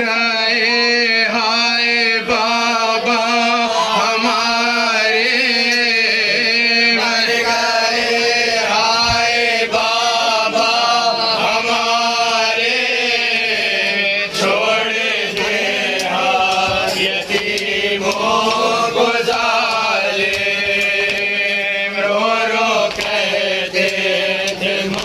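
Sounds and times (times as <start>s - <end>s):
voices chanting a lament: 0.0s - 25.0s.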